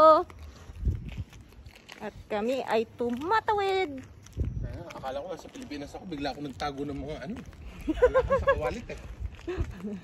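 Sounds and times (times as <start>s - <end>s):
faint footsteps: 0.0s - 10.0s.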